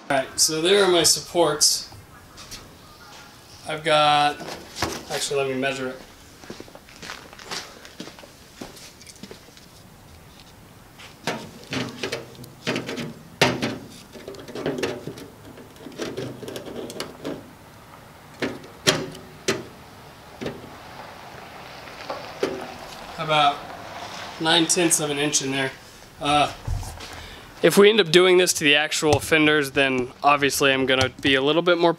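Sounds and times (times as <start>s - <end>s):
tools clicking and knocking: 11.2s - 17.4s, 30.8s - 31.4s.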